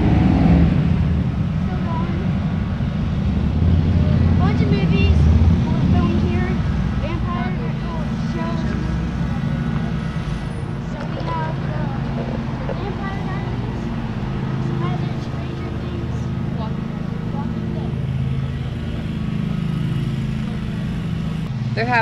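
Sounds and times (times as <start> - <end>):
car and truck engines humming: 0.0 - 22.0.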